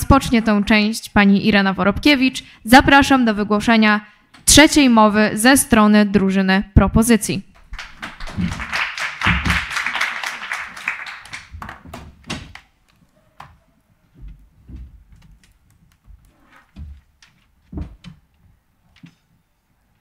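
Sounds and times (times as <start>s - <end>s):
audience applause: 7.6s - 12.1s
knocks and thumps on lectern: 11.5s - 12.6s, 16.7s - 18.2s
soft knocks: 16.0s - 19.3s.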